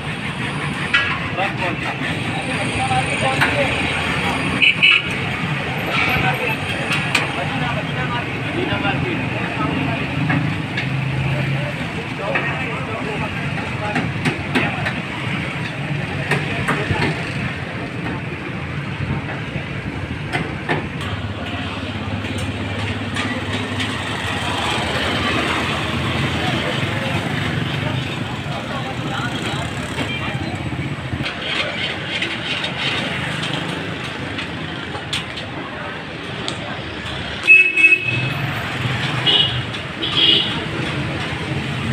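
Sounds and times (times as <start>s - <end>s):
road traffic: 0.0s - 41.9s
voices talking: 0.0s - 41.9s.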